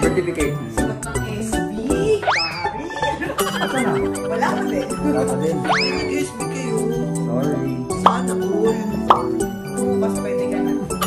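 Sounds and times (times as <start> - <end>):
background music with held notes: 0.0 - 11.0
short blip sound effects: 9.1 - 9.4.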